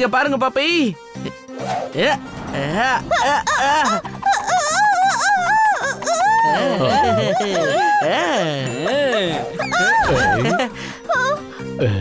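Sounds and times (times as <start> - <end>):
background music: 0.0 - 12.0
cartoon character wordless cries: 2.8 - 12.0.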